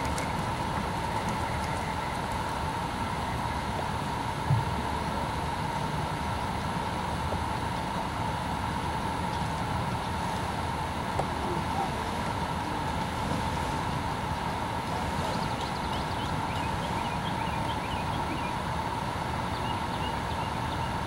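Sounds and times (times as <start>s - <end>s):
faint steady hum: 0.0s - 21.0s
low rumble and hiss: 0.0s - 21.0s.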